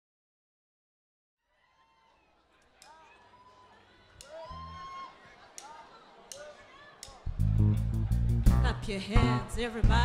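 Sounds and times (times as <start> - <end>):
bass note: 7.3 - 9.5
soul band playing: 7.3 - 10.0.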